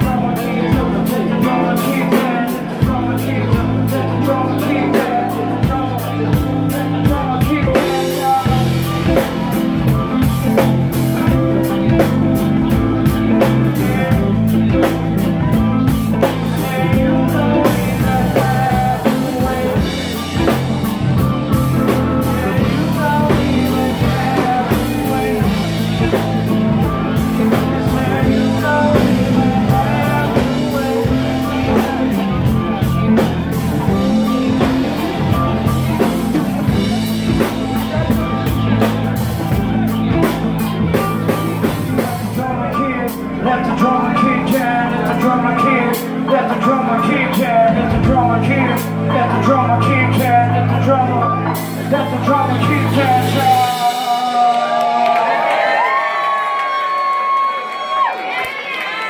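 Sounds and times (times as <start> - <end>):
drum kit: 0.0 - 55.0
person singing: 0.0 - 56.0
bass guitar: 0.0 - 58.1
keyboard: 0.0 - 59.0.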